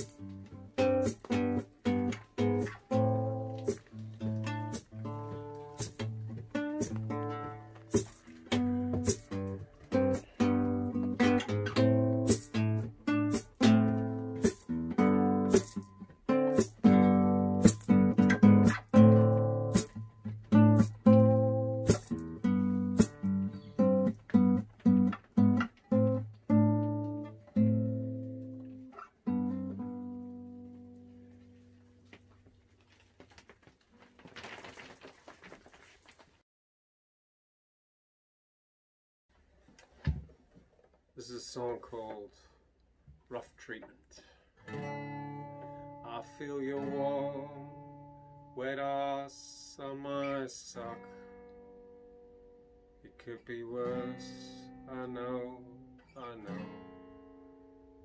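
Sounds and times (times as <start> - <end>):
nylon-string guitar strumming chords: 0.0 - 32.2, 44.6 - 49.2, 49.8 - 58.0.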